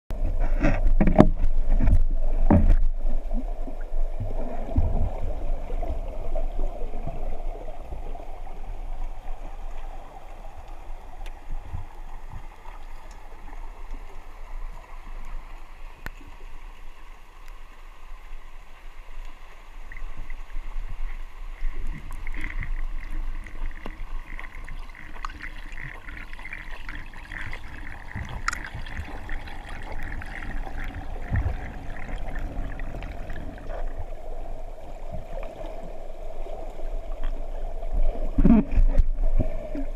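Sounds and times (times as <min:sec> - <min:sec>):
low underwater rumble: 0:00.1 - 0:39.9
knocks and splashes: 0:00.4 - 0:03.0.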